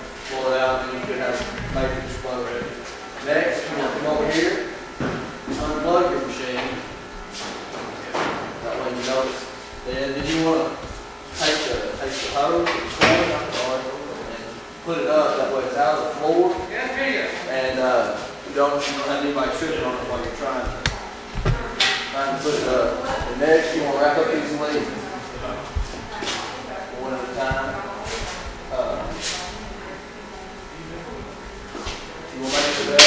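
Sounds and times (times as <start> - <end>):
man talking indistinctly: 8.6 - 29.5.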